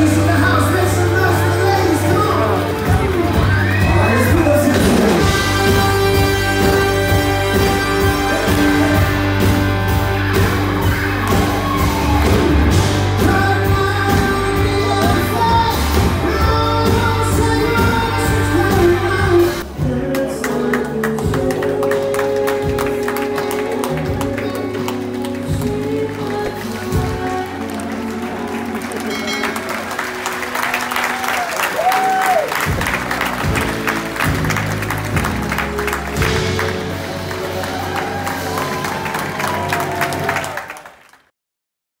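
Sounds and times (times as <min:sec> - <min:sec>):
audience applause: 0:00.0 - 0:16.2, 0:20.1 - 0:41.3
live pop-rock band playing: 0:00.0 - 0:40.5
audience voices: 0:00.0 - 0:41.0.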